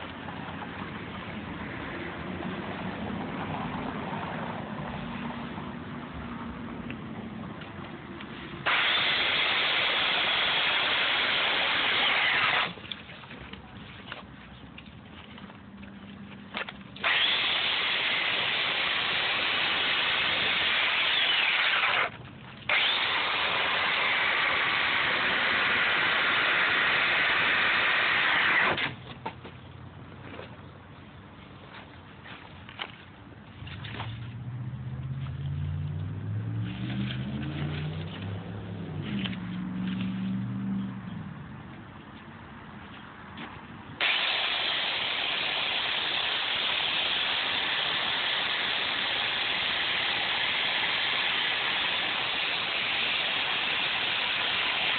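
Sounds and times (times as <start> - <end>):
electric chainsaw cutting foam: 8.7 - 12.8, 17.0 - 22.1, 22.7 - 29.0.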